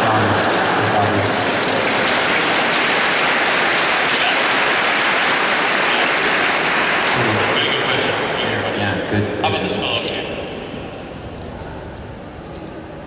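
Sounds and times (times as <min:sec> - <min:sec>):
large audience applauding: 0:00.0 - 0:08.4.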